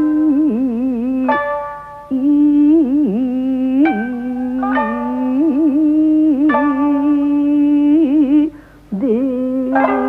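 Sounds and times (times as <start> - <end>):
person singing long wavering notes: 0.0 - 10.0.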